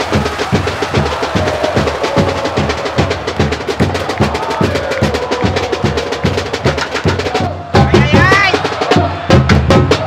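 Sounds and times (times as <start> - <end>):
fast steady drumming: 0.0 - 10.0.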